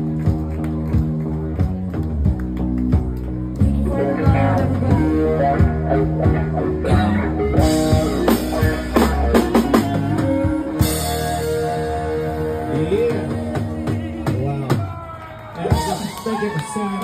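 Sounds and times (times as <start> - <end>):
electric guitar: 0.0 - 14.8
drum kit beat: 0.0 - 16.6.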